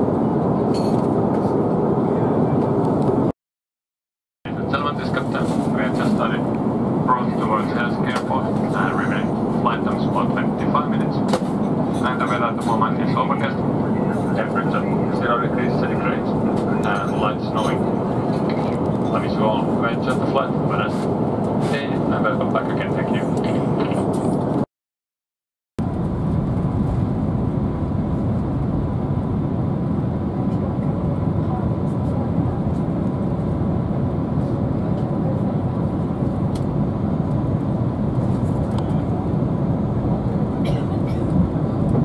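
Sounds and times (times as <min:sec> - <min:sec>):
airliner cabin noise: 0:00.0 - 0:03.3, 0:04.5 - 0:24.7, 0:25.8 - 0:42.0.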